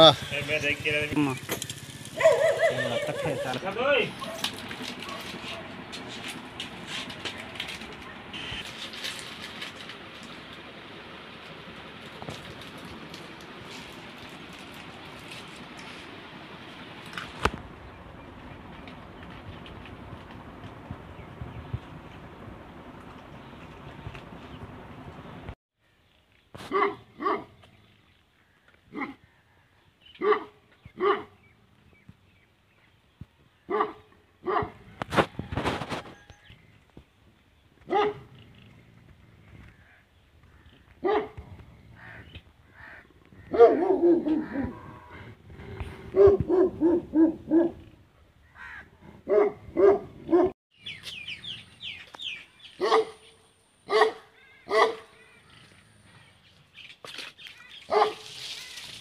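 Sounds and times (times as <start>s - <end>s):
dog barking: 2.2s - 3.4s, 4.2s - 5.7s, 26.7s - 27.5s, 28.9s - 29.2s, 30.2s - 31.4s, 33.7s - 34.8s, 37.9s - 38.3s, 41.0s - 41.4s, 43.5s - 44.8s, 46.1s - 47.8s, 49.3s - 50.5s, 52.8s - 53.3s, 53.9s - 55.2s, 57.9s - 58.3s
bird chirping: 50.7s - 58.0s.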